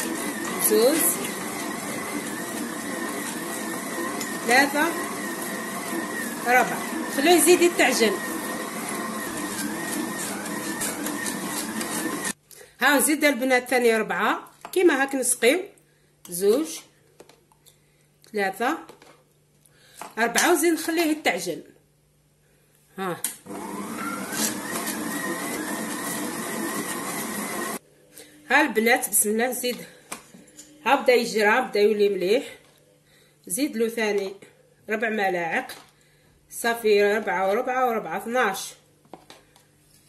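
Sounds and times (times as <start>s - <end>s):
stand mixer motor whine: 0.0s - 12.4s, 23.5s - 27.8s.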